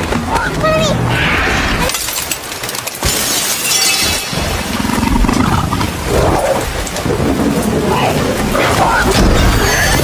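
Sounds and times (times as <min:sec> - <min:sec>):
glass shattering: 0:01.8 - 0:04.7
low growl: 0:04.6 - 0:06.8.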